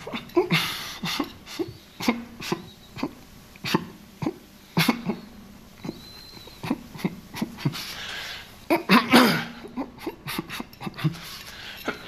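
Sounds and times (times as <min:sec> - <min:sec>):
man's sharp cough-like vocal bursts: 0:08.7 - 0:09.6.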